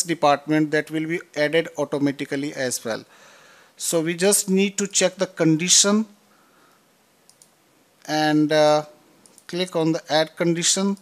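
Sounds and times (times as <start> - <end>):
computer mouse clicks: 7.2 - 7.6, 9.2 - 9.6.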